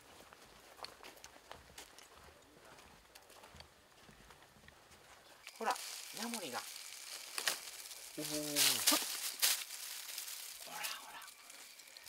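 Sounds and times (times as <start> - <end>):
footsteps on dry leaves: 5.4 - 12.0
man's voice: 8.2 - 9.0.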